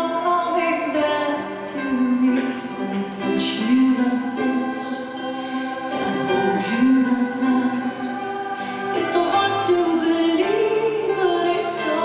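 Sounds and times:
choir singing held notes: 3.3s - 12.0s.

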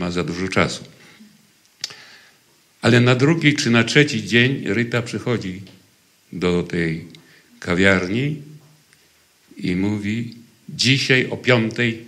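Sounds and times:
man talking: 0.0s - 1.0s, 2.8s - 8.7s, 9.5s - 12.0s.

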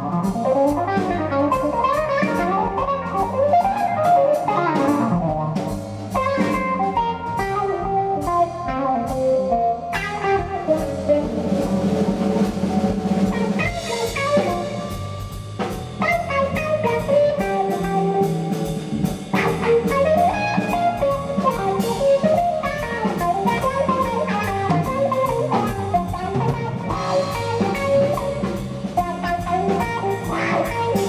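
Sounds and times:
bass guitar: 0.0s - 31.0s
drum kit: 0.0s - 31.0s
electric guitar lead: 0.0s - 31.0s.

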